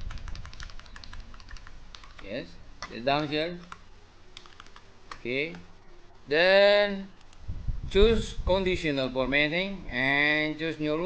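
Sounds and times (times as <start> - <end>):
keyboard keys clicking: 0.0 - 3.8, 4.4 - 5.6.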